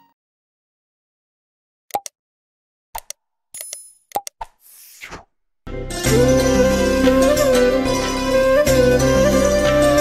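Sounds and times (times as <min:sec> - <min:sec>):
short clicks and pops: 0:01.9 - 0:02.2, 0:03.0 - 0:04.6
music: 0:05.7 - 0:10.0.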